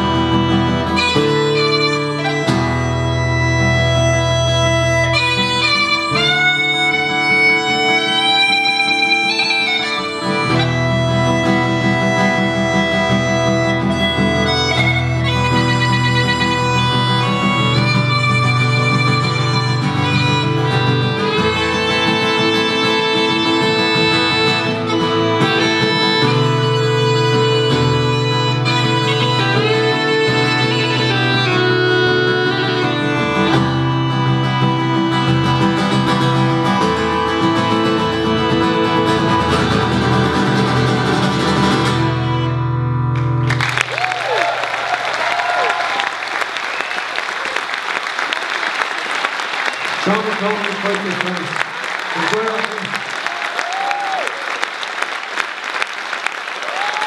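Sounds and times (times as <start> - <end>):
live band playing folk song: 0.0 - 44.4, 46.5 - 53.9
guitar: 0.0 - 54.6
audience applauding: 43.2 - 57.0.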